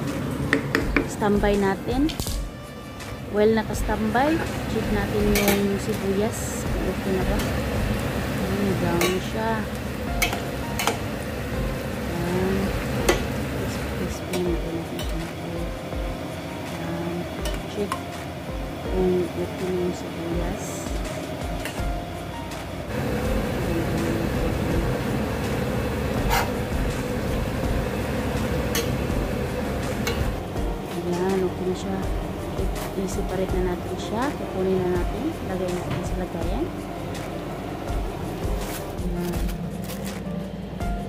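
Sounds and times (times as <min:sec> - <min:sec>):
onions sizzling in oil: 0:04.4 - 0:14.1, 0:22.9 - 0:30.4.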